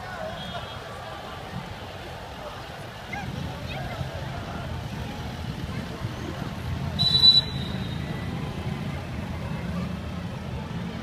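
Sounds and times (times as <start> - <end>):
engine and traffic rumble: 0.0 - 11.0
shrill whistle blast: 7.0 - 8.0.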